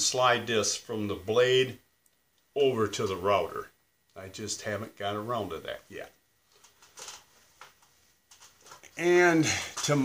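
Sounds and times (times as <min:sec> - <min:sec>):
faint rustling: 0:06.4 - 0:10.0.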